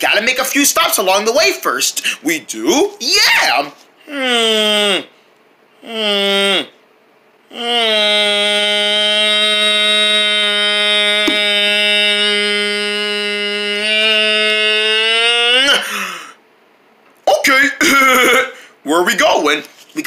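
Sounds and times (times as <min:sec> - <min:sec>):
person holding a long note: 0:07.5 - 0:15.8.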